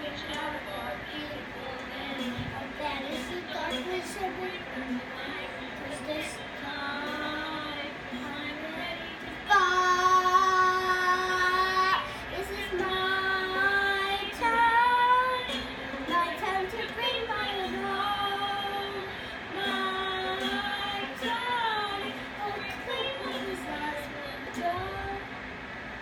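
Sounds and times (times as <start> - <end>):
girl singing long notes: 0.0 - 25.4.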